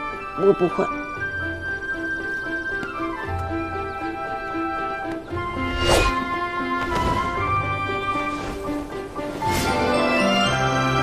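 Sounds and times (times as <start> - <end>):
soft drama score: 0.0 - 11.0.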